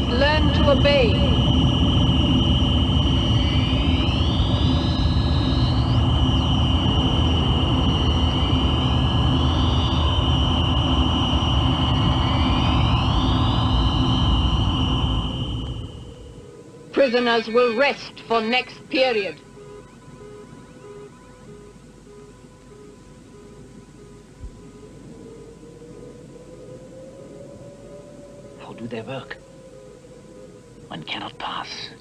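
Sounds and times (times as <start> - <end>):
loud low rumble: 0.0 - 16.6
electronic high tone with sweeps: 0.0 - 31.9.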